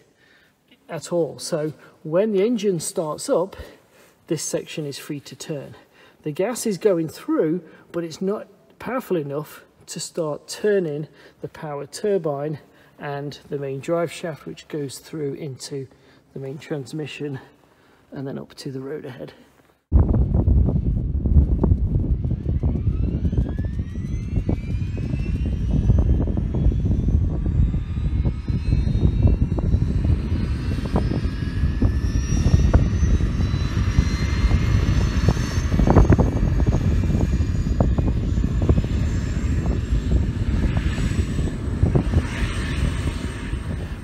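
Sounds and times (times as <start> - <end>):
heavy low rumble: 19.9 - 44.0
turbine engine whine rising: 19.9 - 44.0.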